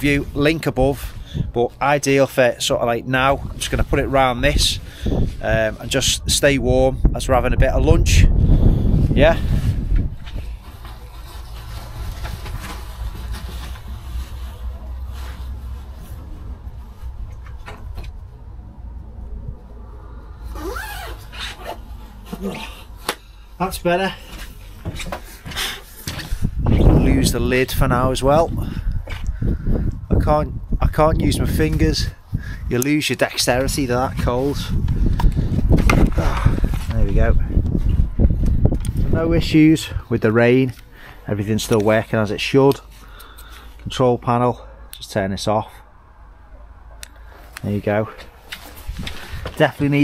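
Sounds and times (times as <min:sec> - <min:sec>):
wind rumble on microphone: 0:00.0 - 0:01.8, 0:03.3 - 0:22.2, 0:26.1 - 0:40.3, 0:48.7 - 0:50.0
jacket fabric rustling: 0:09.4 - 0:18.5, 0:20.4 - 0:23.2, 0:48.2 - 0:50.0.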